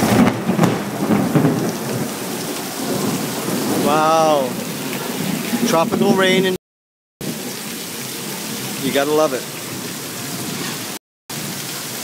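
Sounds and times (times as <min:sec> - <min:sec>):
heavy rain falling: 0:00.0 - 0:06.6, 0:07.2 - 0:12.0.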